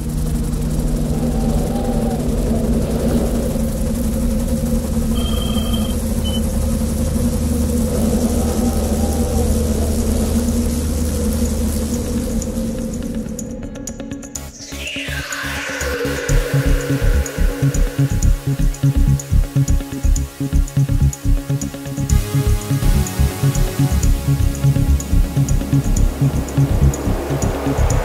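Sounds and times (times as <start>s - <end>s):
helicopter turbine and rotor: 0.0s - 28.0s.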